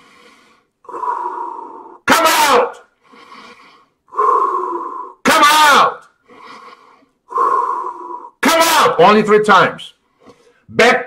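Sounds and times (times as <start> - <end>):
man breathing deeply: 0.0 - 2.0, 2.9 - 5.2, 6.2 - 8.4.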